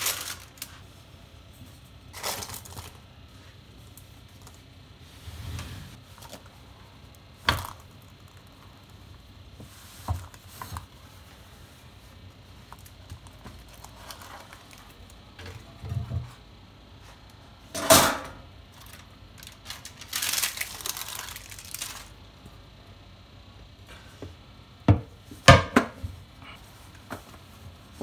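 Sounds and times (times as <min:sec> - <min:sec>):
rustling scrape: 0:05.0 - 0:06.4.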